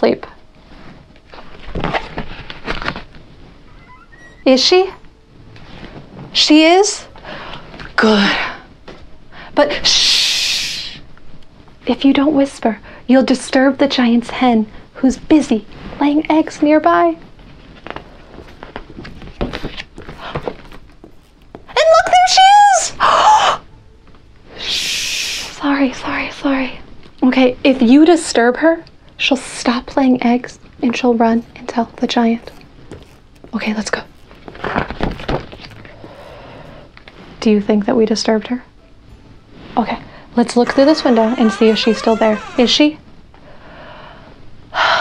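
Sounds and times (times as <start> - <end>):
paper rustling and crackling: 17.4 - 21.8, 31.2 - 37.1
woman shushing: 24.6 - 25.6.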